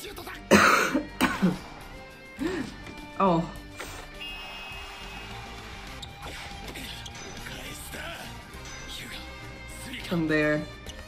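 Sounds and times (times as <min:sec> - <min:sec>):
background music: 0:00.0 - 0:11.0
faint dialogue: 0:00.0 - 0:11.0.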